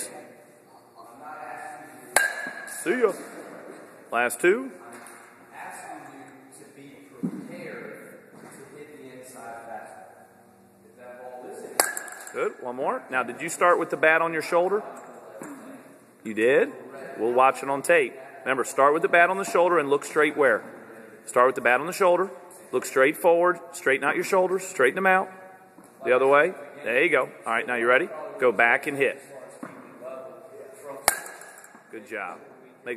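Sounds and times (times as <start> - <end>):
metal bat hitting baseball: 2.1 - 3.3, 11.8 - 12.6, 31.0 - 31.8
bat cracking baseball: 31.0 - 31.8.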